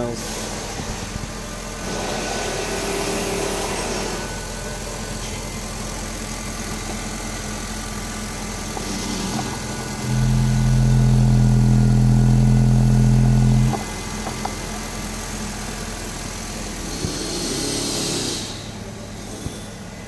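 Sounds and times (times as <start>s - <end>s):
car engine running: 0.0s - 20.0s.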